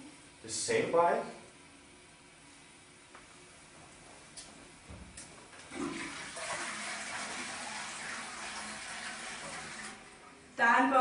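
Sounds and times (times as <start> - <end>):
toilet flushing: 5.7 - 10.4.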